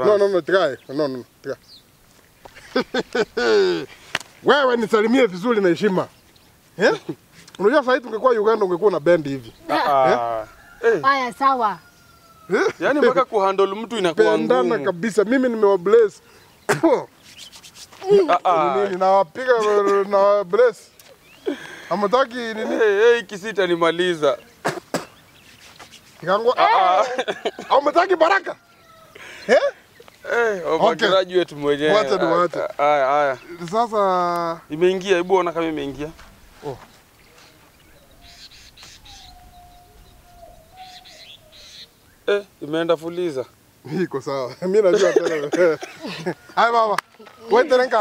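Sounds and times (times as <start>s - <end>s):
faint birds chirping: 0.0s - 48.0s
faint rustling: 32.4s - 40.2s.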